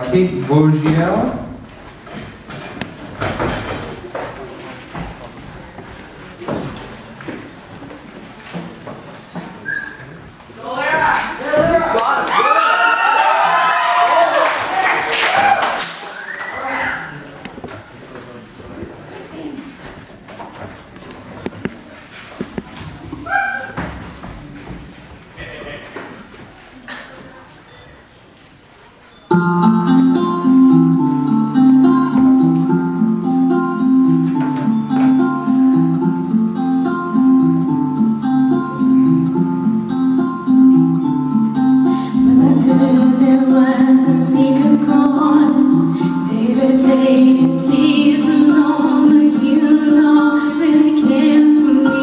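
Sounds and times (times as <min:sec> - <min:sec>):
audience murmuring: 0:00.0 - 0:12.4, 0:14.2 - 0:52.0
shuffling: 0:17.4 - 0:29.1.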